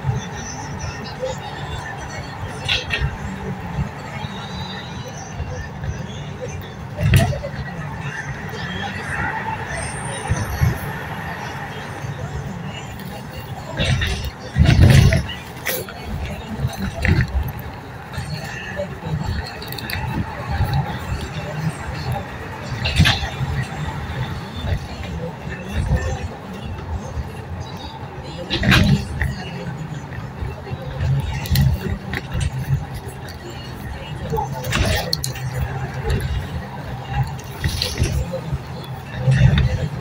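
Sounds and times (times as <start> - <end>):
vehicle road noise from inside: 0.0 - 40.0.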